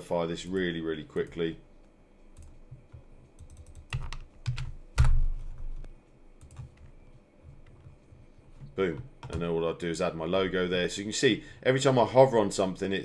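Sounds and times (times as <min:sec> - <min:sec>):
keyboard and mouse clicks: 0:02.4 - 0:08.0.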